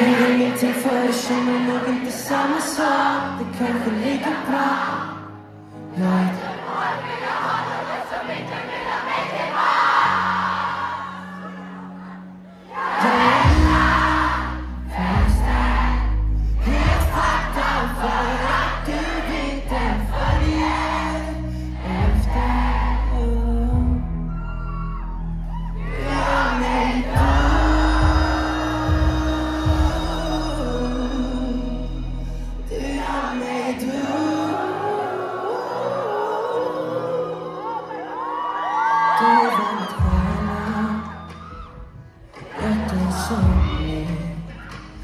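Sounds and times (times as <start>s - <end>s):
crowd screaming and singing: 0.0s - 45.0s
band playing low chords: 13.3s - 24.3s, 26.0s - 33.3s
heavy deep bass: 13.4s - 33.4s.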